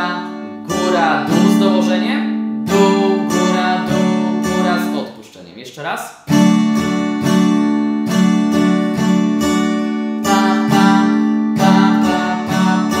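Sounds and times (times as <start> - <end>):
acoustic guitar strumming: 0.0 - 5.3, 6.2 - 13.0.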